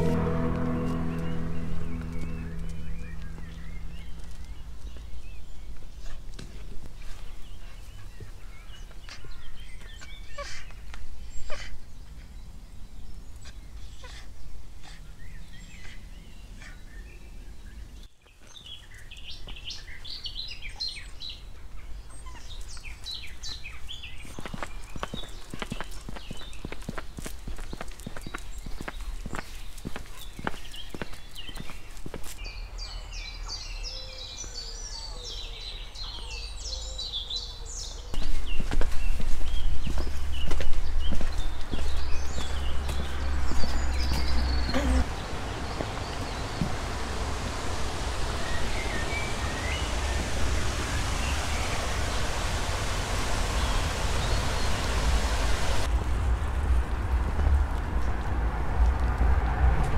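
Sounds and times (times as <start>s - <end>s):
low rumble: 0.0s - 5.9s, 40.3s - 59.9s
birds singing: 0.0s - 6.4s, 7.0s - 55.9s
road noise: 0.0s - 8.2s, 34.2s - 59.9s
wind: 0.0s - 59.9s
footsteps on pavement: 24.2s - 32.4s, 38.2s - 46.9s.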